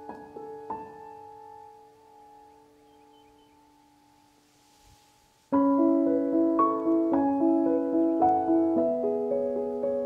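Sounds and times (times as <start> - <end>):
piano chords: 0.0 - 10.0.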